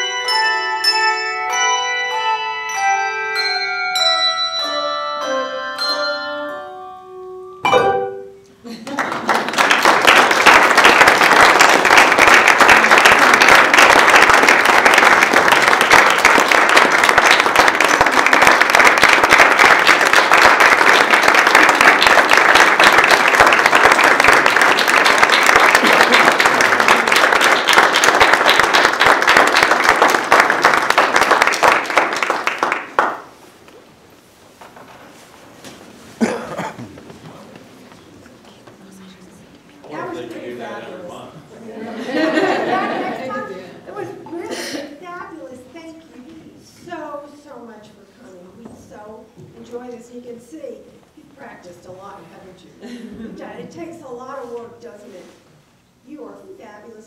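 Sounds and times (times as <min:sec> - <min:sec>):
handbell choir ringing: 0:00.0 - 0:08.5
audience applauding: 0:08.8 - 0:33.4.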